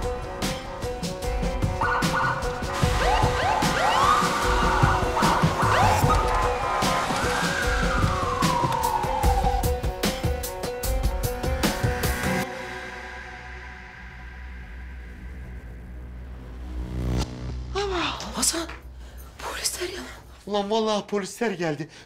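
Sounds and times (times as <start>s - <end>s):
dramatic background music: 0.0s - 20.6s
police sirens wailing: 1.8s - 10.0s.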